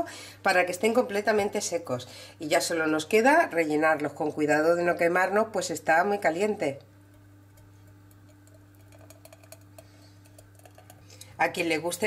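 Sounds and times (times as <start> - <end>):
jam pouring into a jar: 7.6 - 11.0.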